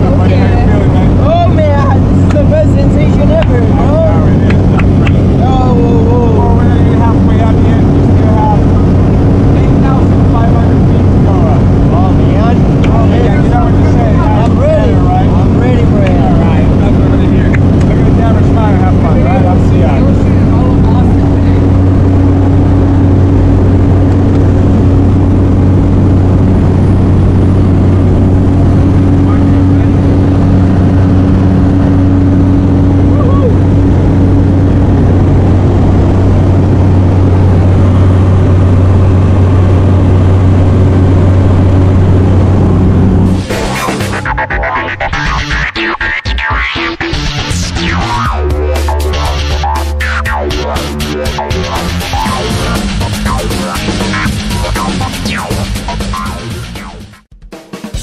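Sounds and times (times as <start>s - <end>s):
voices talking and shouting: 0.0s - 22.2s, 32.7s - 33.8s
plane engine and propeller drone: 0.0s - 45.6s, 47.4s - 57.2s.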